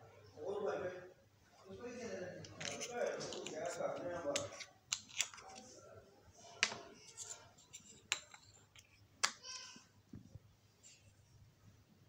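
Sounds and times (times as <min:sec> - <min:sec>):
plastic jars clicking on stone: 0:02.6 - 0:05.6, 0:07.7 - 0:09.6.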